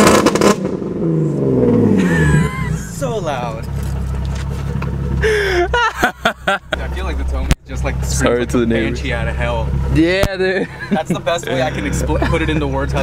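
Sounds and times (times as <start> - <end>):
car engine revs dropping to idle: 0.0 - 13.0.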